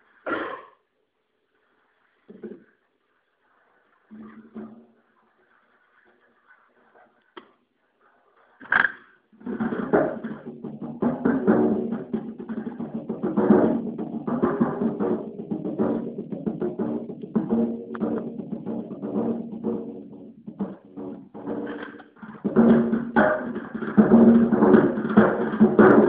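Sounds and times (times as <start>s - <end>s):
drum kit strokes: 9.4s - 26.0s.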